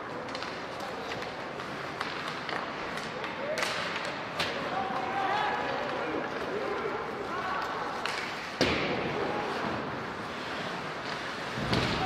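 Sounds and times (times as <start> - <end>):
steady rink noise: 0.0 - 12.0.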